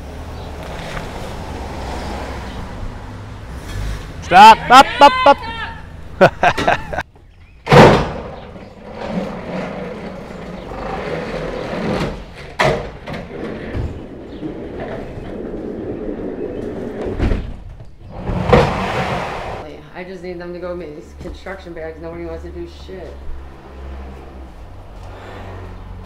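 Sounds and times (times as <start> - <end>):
loud bang: 7.7 - 8.4.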